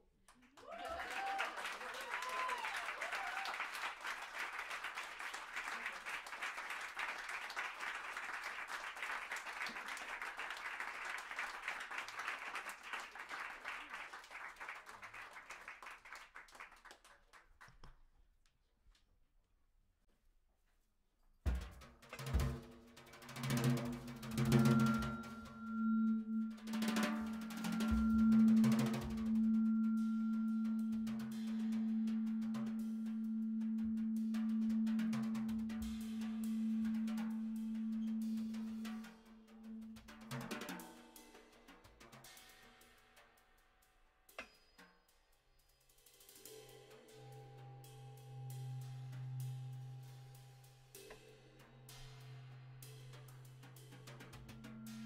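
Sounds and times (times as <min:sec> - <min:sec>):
drum kit played with sticks: 0:21.5 - 0:43.4, 0:47.8 - 0:55.0
cymbal hits: 0:23.7 - 0:41.7, 0:46.0 - 0:55.0
low hum: 0:24.1 - 0:40.0
long held low tone: 0:24.1 - 0:40.1.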